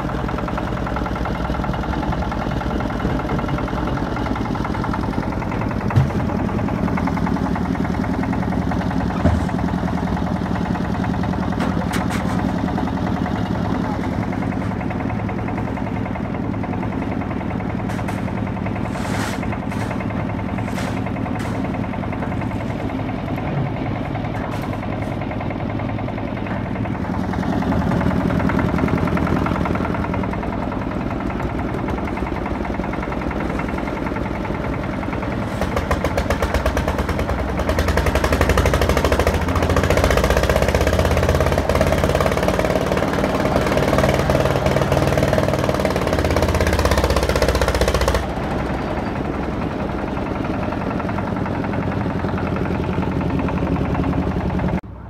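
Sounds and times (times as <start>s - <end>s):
concrete mixer engine rattling: 0.0s - 55.0s.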